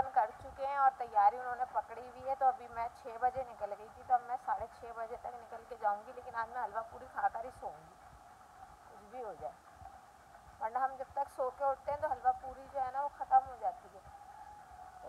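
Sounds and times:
woman talking: 0:00.0 - 0:08.0, 0:08.9 - 0:09.6, 0:10.6 - 0:14.1.

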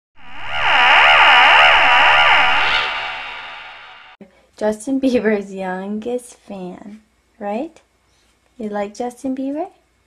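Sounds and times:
warbling electronic tone: 0:00.2 - 0:04.2.

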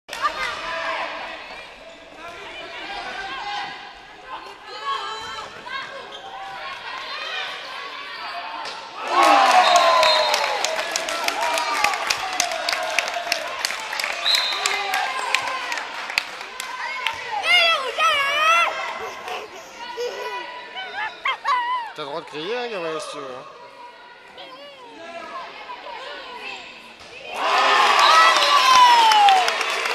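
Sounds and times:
players and spectators voices: 0:00.1 - 0:29.9
crowd shouting and cheering: 0:04.7 - 0:29.9.

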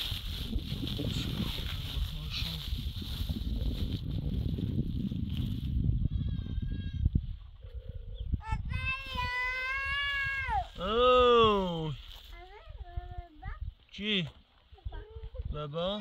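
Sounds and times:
plastic sack and soil rustling: 0:00.0 - 0:05.8, 0:10.0 - 0:12.7.

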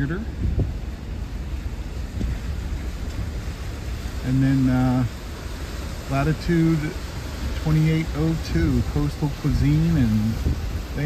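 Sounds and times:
wind buffeting microphone: 0:00.0 - 0:04.2, 0:05.0 - 0:11.0
pickup truck driving on wet road: 0:00.0 - 0:11.0.

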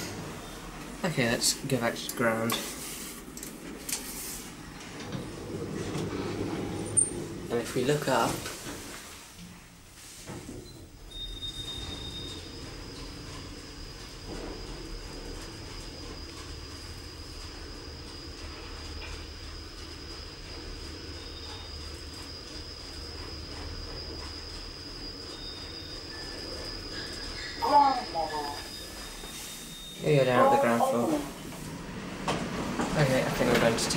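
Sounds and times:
thin high whine: 0:00.0 - 0:32.4
lift car rumbling: 0:00.0 - 0:33.9.

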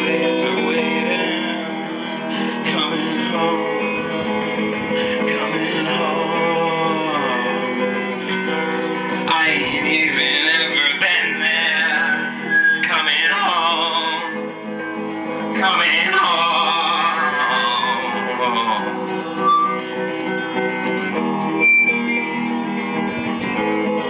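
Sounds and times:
man singing into microphone: 0:00.0 - 0:14.6, 0:15.4 - 0:19.3
acoustic guitar strumming: 0:00.0 - 0:24.0.

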